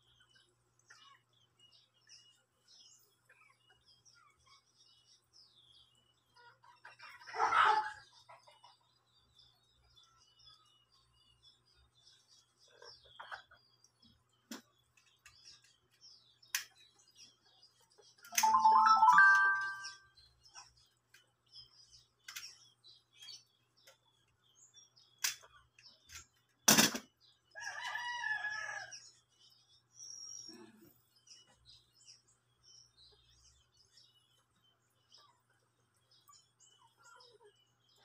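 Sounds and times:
birds chirping: 0.0s - 38.0s.

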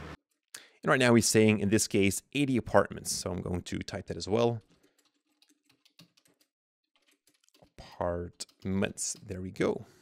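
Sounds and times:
faint typing on keyboard: 4.0s - 10.0s.

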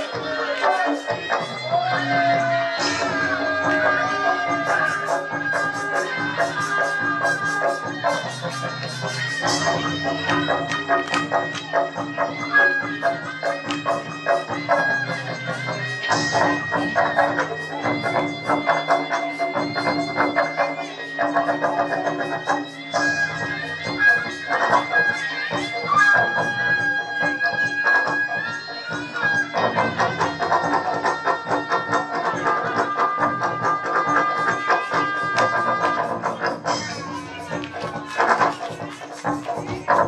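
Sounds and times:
shrill reed wind instrument: 0.0s - 40.0s.

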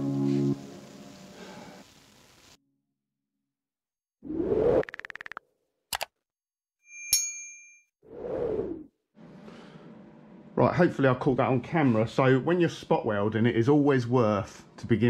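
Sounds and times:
background music: 0.0s - 1.0s
bright bell ding: 6.9s - 7.9s.

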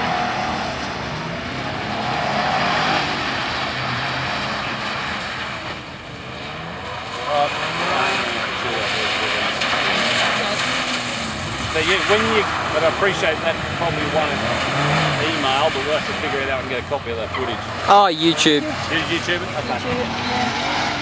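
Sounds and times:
car engine under throttle: 0.0s - 21.0s.

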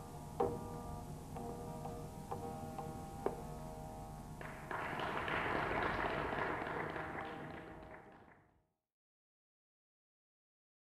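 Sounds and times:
veena ringing note: 0.0s - 4.7s
audience applause: 4.4s - 8.4s.

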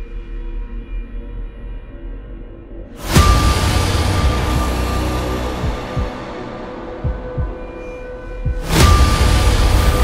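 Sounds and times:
low hits: 3.0s - 10.0s.

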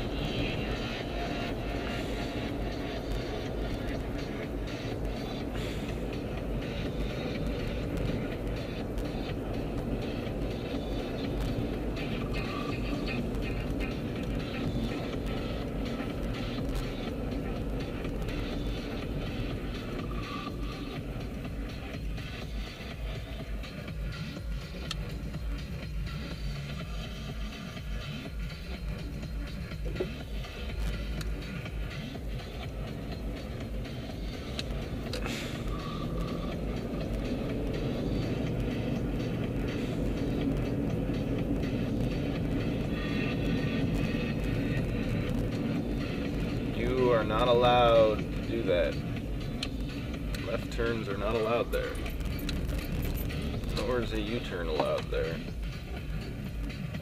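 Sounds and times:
car engine and road rumble: 0.0s - 57.0s
faint music: 0.0s - 57.0s.

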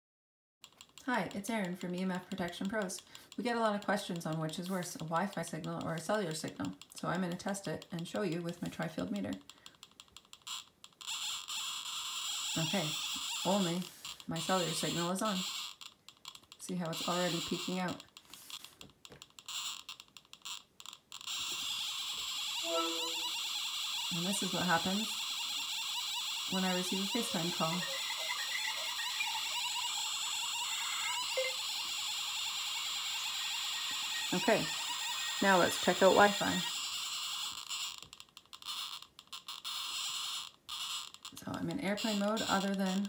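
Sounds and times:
choppy static hiss from meter: 21.4s - 38.1s
short held tone: 22.6s - 23.3s.

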